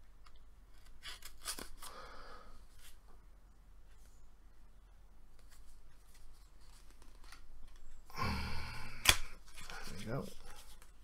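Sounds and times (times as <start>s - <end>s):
playing cards crinkling: 0.2s - 2.0s, 5.4s - 7.9s, 9.0s - 11.0s.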